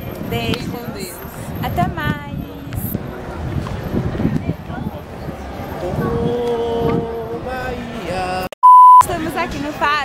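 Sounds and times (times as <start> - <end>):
electronic beep: 8.6 - 9.0.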